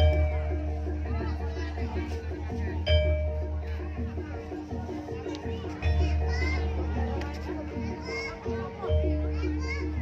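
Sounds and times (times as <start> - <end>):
gamelan struck metal keys: 0.0 - 1.9, 2.8 - 7.9
children shouting and chattering: 0.0 - 10.0.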